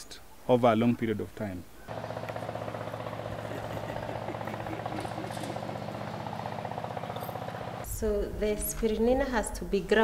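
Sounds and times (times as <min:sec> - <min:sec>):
engine running steadily: 0:01.9 - 0:07.9.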